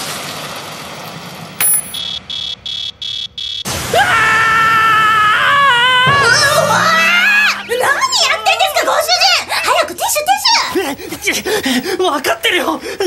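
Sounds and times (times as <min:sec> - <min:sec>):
high-pitched girl's voice screaming: 0:03.9 - 0:10.8.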